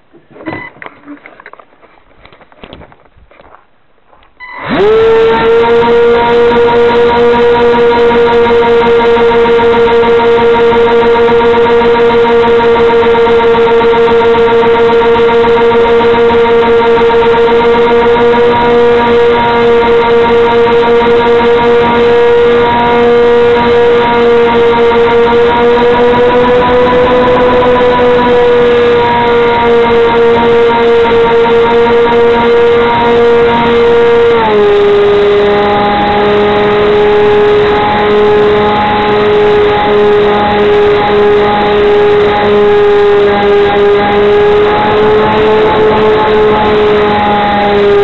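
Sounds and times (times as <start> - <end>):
model plane motor whine: 4.5 - 48.0.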